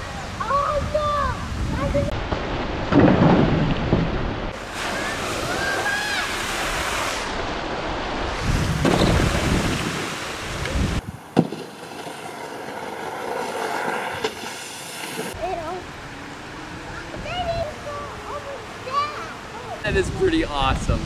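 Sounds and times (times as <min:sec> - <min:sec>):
wind buffeting microphone: 0:00.0 - 0:11.4, 0:15.3 - 0:21.0
flowing water: 0:03.7 - 0:21.0.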